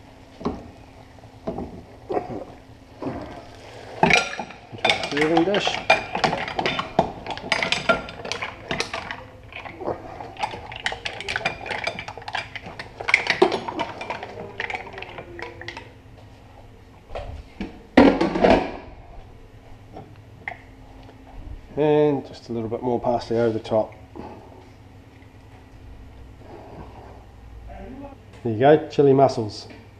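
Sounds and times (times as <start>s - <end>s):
mussel shells clattering into metal bowl: 4.0s - 15.9s.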